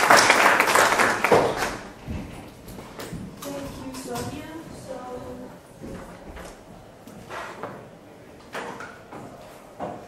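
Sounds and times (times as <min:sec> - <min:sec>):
audience applause: 0:00.0 - 0:01.9.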